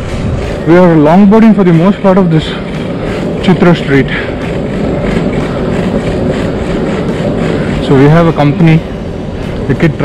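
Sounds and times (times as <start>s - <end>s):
longboard wheels rolling on asphalt: 0.0s - 10.0s.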